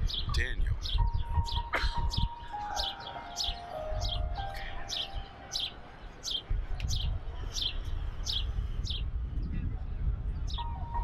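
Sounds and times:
bird chirping: 0:00.0 - 0:09.1.

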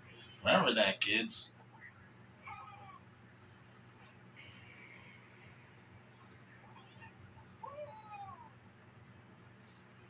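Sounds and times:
faint room hum: 0:00.0 - 0:10.0
meow-like cry: 0:07.6 - 0:08.5.

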